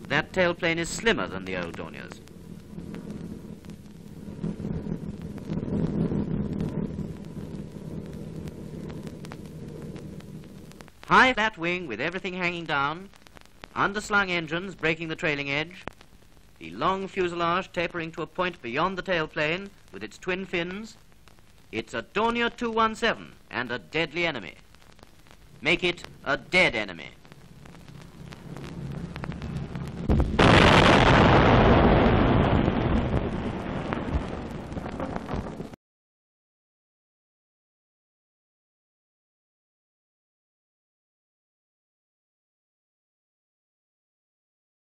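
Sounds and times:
film crackle clicks: 0.0s - 5.7s, 6.5s - 11.1s, 12.2s - 14.2s, 19.4s - 22.4s, 24.4s - 31.2s
piston aircraft engines droning: 0.0s - 10.9s
low rumble: 0.0s - 11.0s, 27.2s - 35.8s
loud explosion: 28.4s - 35.8s.

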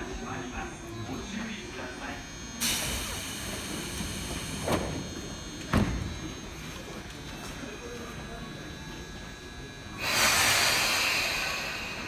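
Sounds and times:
station background noise: 0.0s - 12.0s
train doors closing with thuds: 2.6s - 6.4s.

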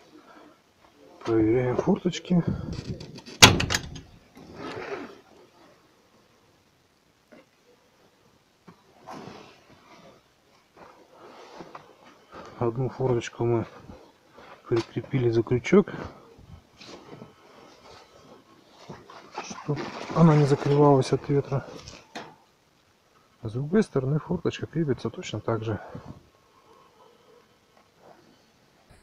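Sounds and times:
faint background noise: 0.0s - 29.0s
man speaking: 1.2s - 2.9s, 12.6s - 13.8s, 14.7s - 16.2s, 19.6s - 21.8s, 23.4s - 26.1s
window frame rattle: 2.8s - 4.2s
metal window latch clack: 3.0s - 4.2s
soft rustle: 4.0s - 6.7s, 7.3s - 23.6s, 25.2s - 29.0s.

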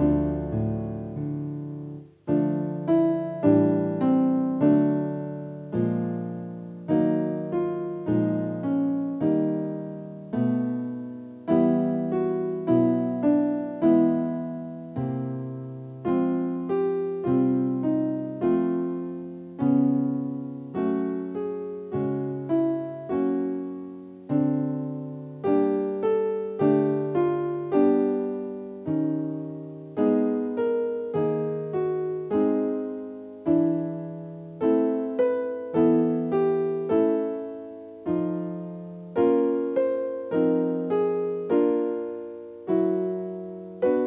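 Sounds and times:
piano chords and figures: 0.0s - 44.0s.

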